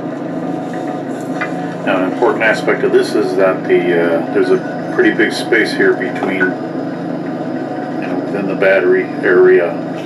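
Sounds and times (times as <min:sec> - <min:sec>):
mechanical hum with low buzz: 0:00.0 - 0:10.0.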